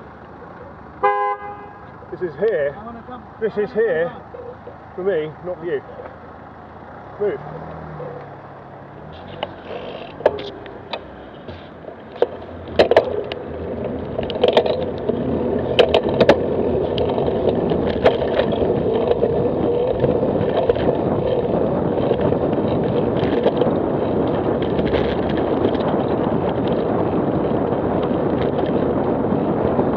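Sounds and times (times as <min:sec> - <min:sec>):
wind rushing over microphone: 0:03.2 - 0:29.9
bicycle clicks and knocks: 0:09.2 - 0:29.9.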